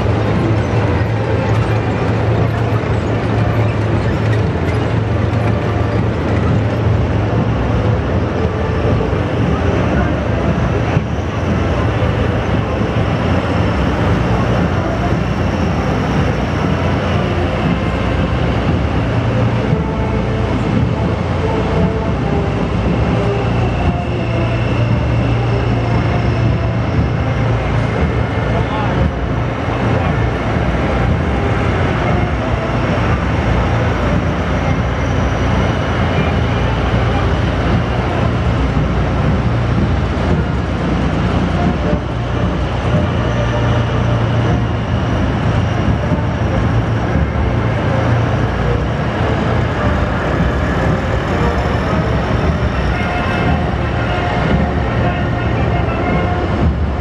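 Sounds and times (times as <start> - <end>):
heavy vehicles engine rumble: 0.0 - 57.0.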